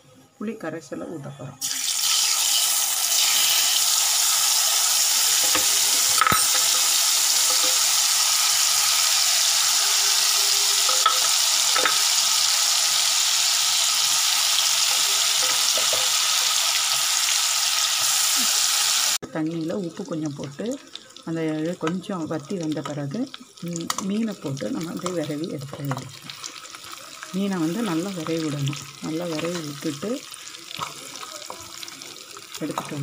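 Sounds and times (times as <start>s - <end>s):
liquid sizzling in hot oil: 1.6s - 33.0s.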